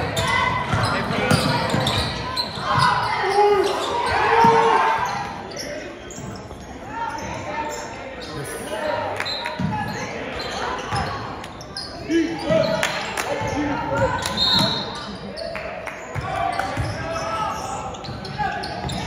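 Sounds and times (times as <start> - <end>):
crowd voices and shouts: 0.0 - 19.0.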